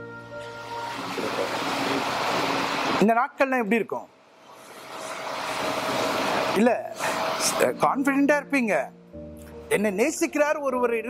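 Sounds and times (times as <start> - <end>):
steady rushing noise: 0.8 - 3.6, 4.2 - 8.2.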